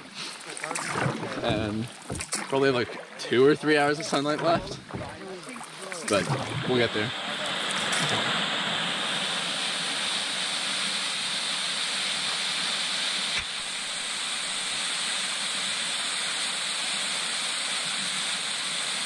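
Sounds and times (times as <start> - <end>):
waterfall rushing over rock: 3.8 - 19.0.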